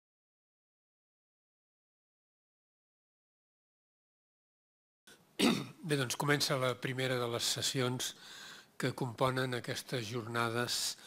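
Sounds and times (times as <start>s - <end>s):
man clearing his throat: 5.4s - 5.9s.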